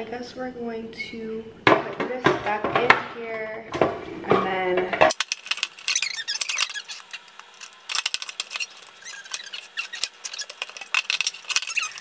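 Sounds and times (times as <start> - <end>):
wet plastic squeaking: 5.1 - 12.0.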